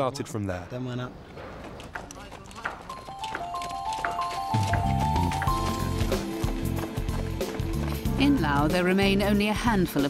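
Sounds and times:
footsteps of people jogging on road: 0:01.3 - 0:09.6
background music: 0:02.6 - 0:10.0.

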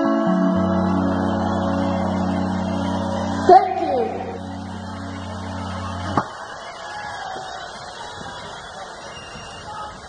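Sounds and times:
band holding sustained chord: 0:00.0 - 0:06.2.

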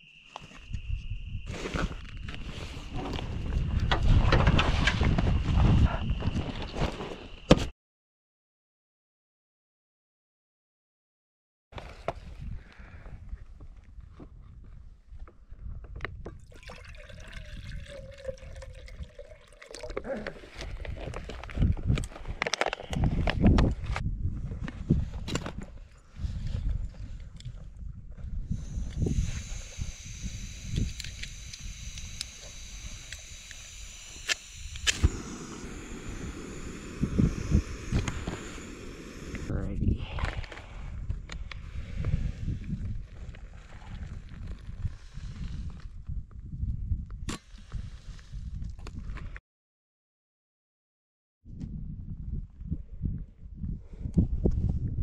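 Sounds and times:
water pouring into metal pot: 0:16.4 - 0:20.0
gas stove hissing: 0:28.5 - 0:39.5.

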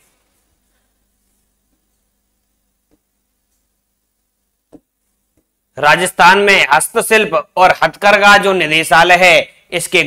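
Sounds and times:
faint electrical hum: 0:00.0 - 0:10.0.

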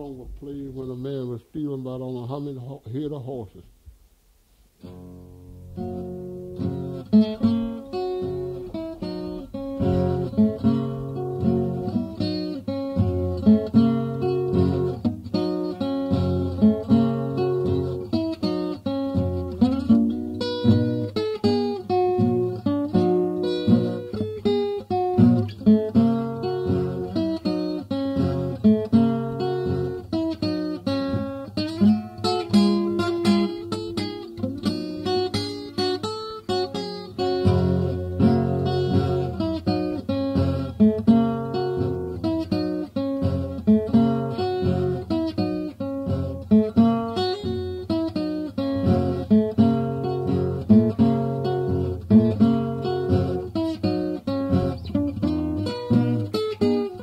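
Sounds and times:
fingerpicked acoustic guitar blues: 0:04.8 - 0:57.0.

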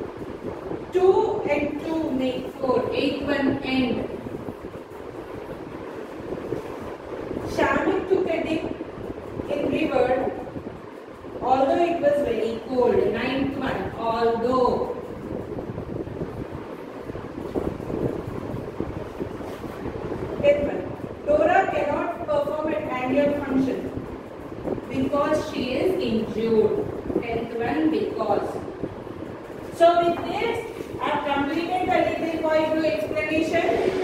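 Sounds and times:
steady rushing background noise: 0:00.0 - 0:34.0
wind buffeting microphone: 0:00.0 - 0:34.0.

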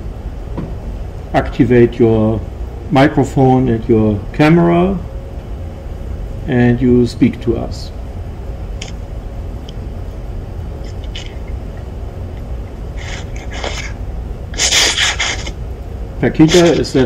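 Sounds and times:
ventilation hum: 0:00.0 - 0:17.0
short hissing noises: 0:13.0 - 0:15.6.

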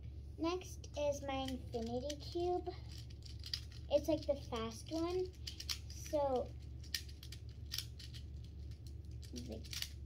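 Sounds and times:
plastic fidget toy clicking: 0:01.4 - 0:10.0.

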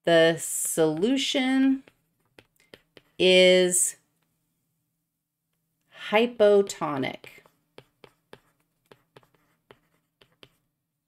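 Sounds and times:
stylus tapping on tablet screen: 0:00.6 - 0:03.2, 0:06.7 - 0:10.7.

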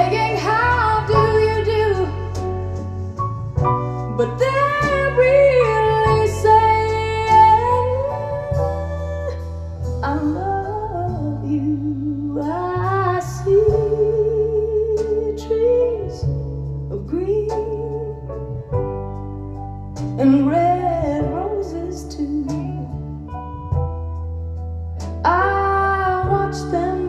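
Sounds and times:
woman singing ballad: 0:00.0 - 0:02.8, 0:03.8 - 0:18.6, 0:20.1 - 0:23.4, 0:25.2 - 0:27.0
instrumental accompaniment: 0:00.0 - 0:27.0.

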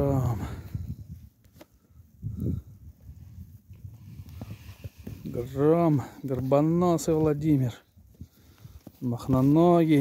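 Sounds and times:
shuffling and rustling in snow: 0:00.0 - 0:10.0.

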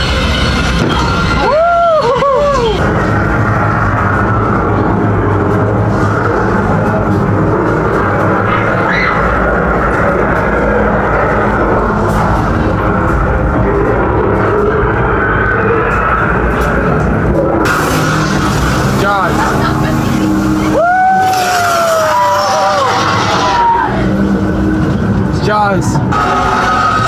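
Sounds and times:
dark background music with drone: 0:00.0 - 0:27.0.

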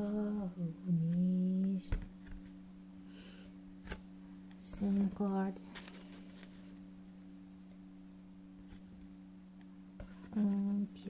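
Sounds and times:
person humming: 0:00.0 - 0:02.0.

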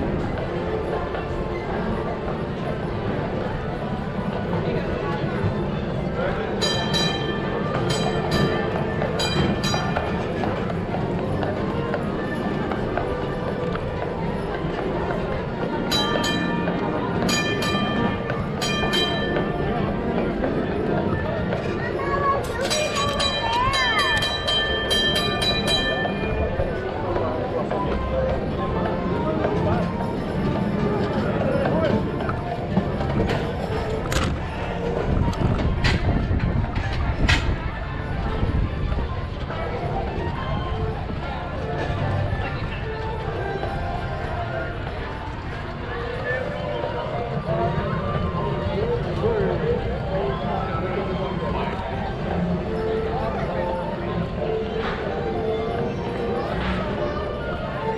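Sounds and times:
wheels rumbling on rails: 0:00.0 - 0:57.9.

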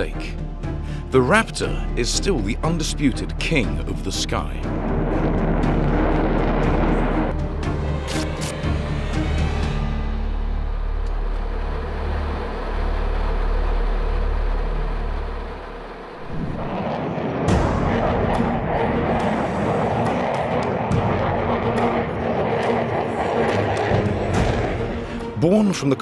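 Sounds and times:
music with low drones: 0:00.0 - 0:26.0
jet roaring past: 0:04.5 - 0:07.4, 0:10.3 - 0:25.4.

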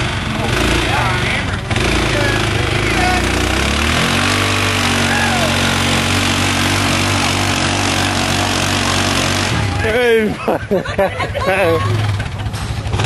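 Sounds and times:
vehicle engine revving in mud: 0:00.0 - 0:13.0.

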